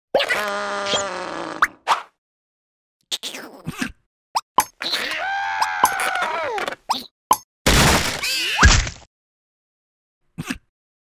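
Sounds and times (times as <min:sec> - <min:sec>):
cartoon character vocal cry: 0:04.8 - 0:06.8.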